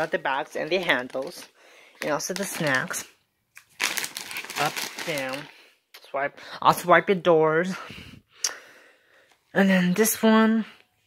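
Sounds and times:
plastic packaging crinkling: 0.0s - 5.7s.

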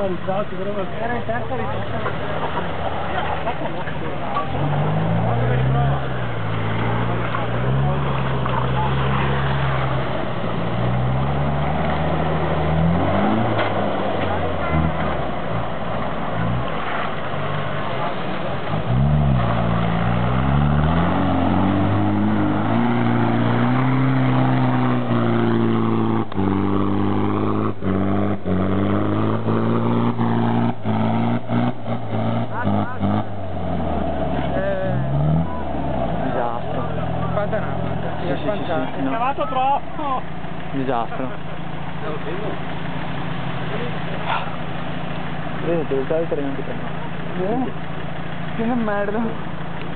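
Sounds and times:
engine revving hard: 10.7s - 15.2s, 18.8s - 38.9s.

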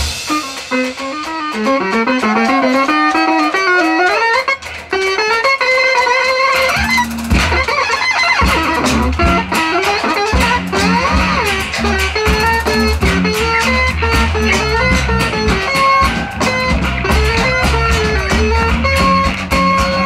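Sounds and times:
high wavering guitar notes: 0.0s - 20.0s
noise rock band playing live: 0.0s - 20.0s.

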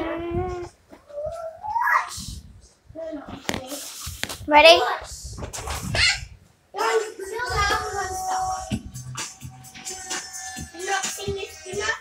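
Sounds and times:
child vocalising and squealing: 0.0s - 2.4s, 5.8s - 6.4s.

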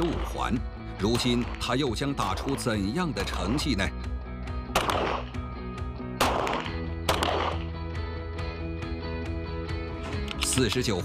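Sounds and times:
background music: 0.0s - 11.0s
pistol shots: 1.1s - 1.7s, 4.6s - 5.4s, 6.2s - 7.8s.

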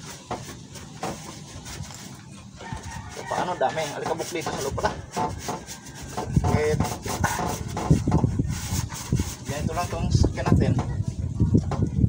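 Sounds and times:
cloth rubbing over engine parts: 0.0s - 10.4s.

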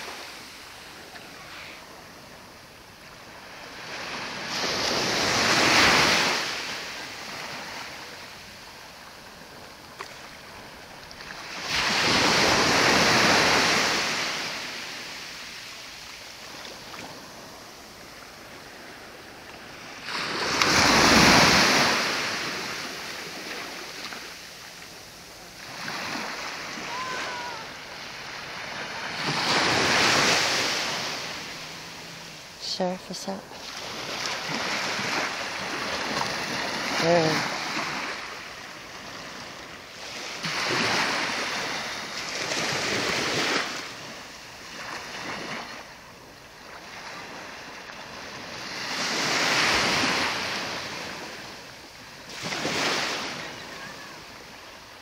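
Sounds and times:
small waves washing ashore: 0.0s - 55.0s.

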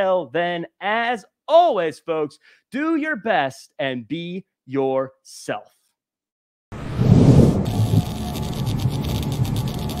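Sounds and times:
electric crackle: 6.8s - 10.0s
low pulsing electronic drone: 7.4s - 10.0s.

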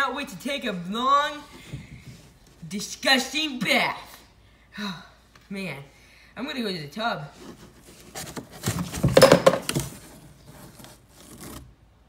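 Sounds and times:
plush toy rustling and scraping: 1.4s - 2.8s, 7.2s - 12.0s.

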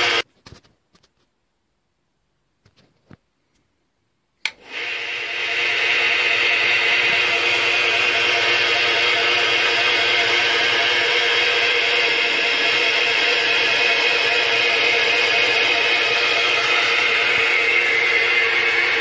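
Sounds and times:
milling machine drilling metal: 4.7s - 19.0s.

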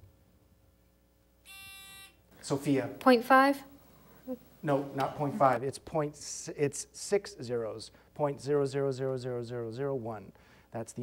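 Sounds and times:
quiz-show buzzer beep: 1.5s - 5.6s.

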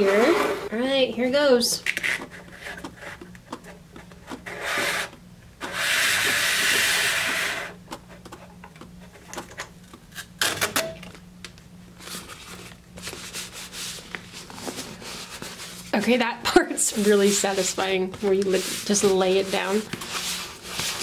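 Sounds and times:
paper tape dragging scrape: 0.0s - 0.7s, 4.3s - 7.8s, 16.8s - 21.0s
tape rubbing on cardboard box: 4.3s - 7.7s, 16.9s - 21.0s.

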